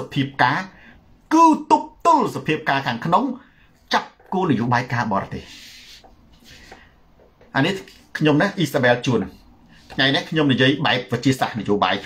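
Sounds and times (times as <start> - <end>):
man talking: 0.0 - 6.0, 7.5 - 12.0.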